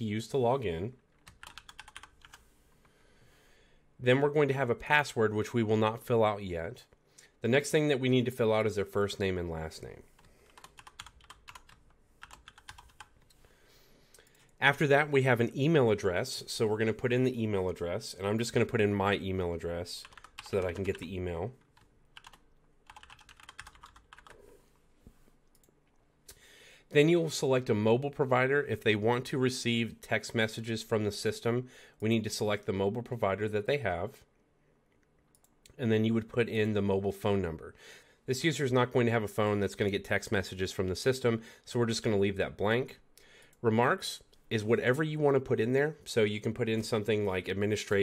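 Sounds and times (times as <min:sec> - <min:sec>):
typing on computer keyboard: 0:01.2 - 0:02.4, 0:10.2 - 0:13.2, 0:20.0 - 0:21.0, 0:21.8 - 0:24.4.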